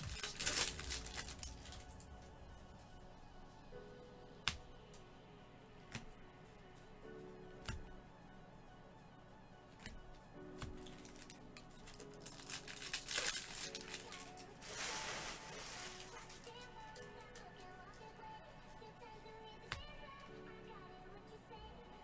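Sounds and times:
plastic wrapper tearing and crinkling: 0:00.0 - 0:02.2, 0:10.8 - 0:17.3
background music: 0:00.0 - 0:22.0.

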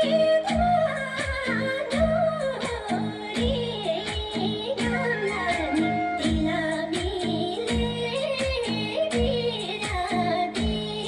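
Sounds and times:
keyboard and bass line: 0:00.0 - 0:11.0
person singing: 0:00.0 - 0:11.0.

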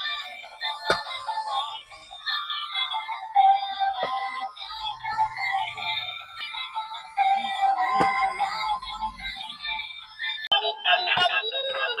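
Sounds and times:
electronic song from toy speaker: 0:00.0 - 0:12.0.

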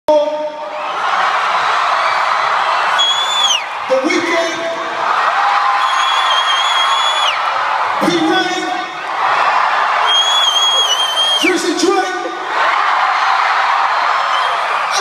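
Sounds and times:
arena crowd cheering: 0:00.1 - 0:15.0
shrill whistles: 0:02.9 - 0:03.7, 0:05.8 - 0:07.4, 0:10.0 - 0:11.5, 0:14.2 - 0:15.0.

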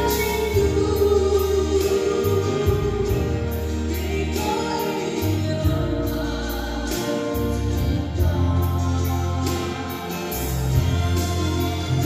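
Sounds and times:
instrumental accompaniment with bass: 0:00.0 - 0:12.0
woman singing gospel song: 0:00.0 - 0:12.0.

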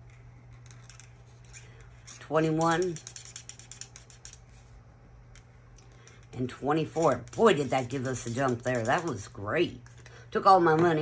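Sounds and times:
marker scribbling on paper: 0:01.4 - 0:04.7, 0:06.9 - 0:09.2.

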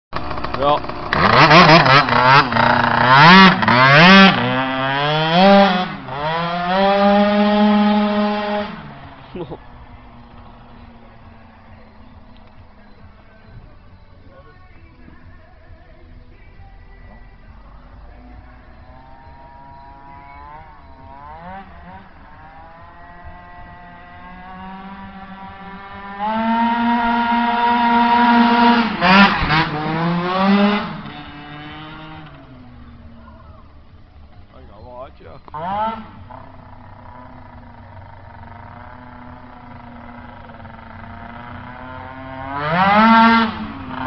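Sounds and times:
scooter engine revving high: 0:00.2 - 0:13.2, 0:18.6 - 0:44.0.

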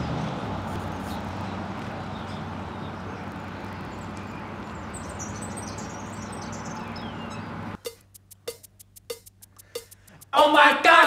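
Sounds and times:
small birds chirping: 0:00.0 - 0:10.3.

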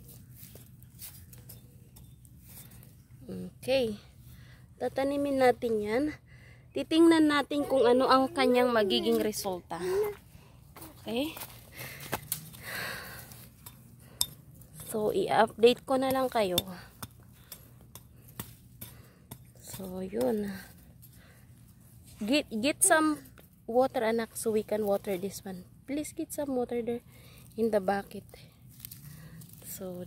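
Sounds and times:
low background hum: 0:00.0 - 0:30.0
finger crunching dry soil: 0:28.2 - 0:30.0.

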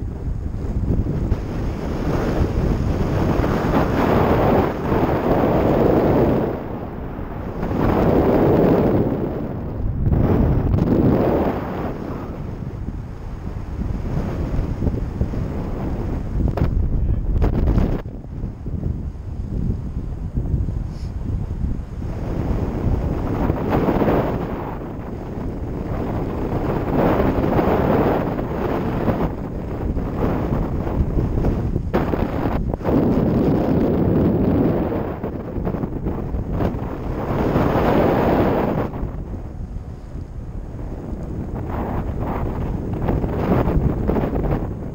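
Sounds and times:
wind rushing over microphone: 0:00.0 - 0:44.9.

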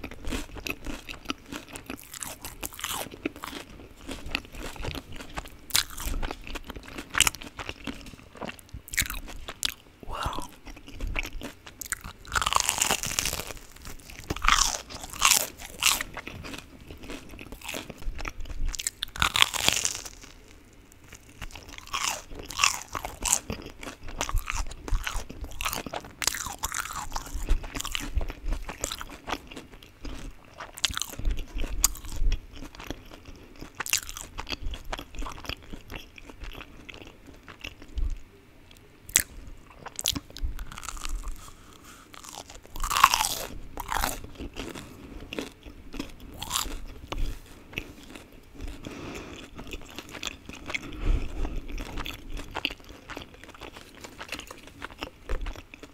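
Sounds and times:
crunchy biting and chewing: 0:00.0 - 0:38.2, 0:38.8 - 0:55.9.

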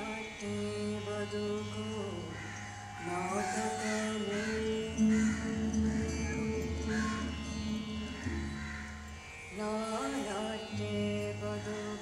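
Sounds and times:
person singing devotional song: 0:00.0 - 0:08.7, 0:09.5 - 0:12.0
steady drone: 0:00.0 - 0:12.0.

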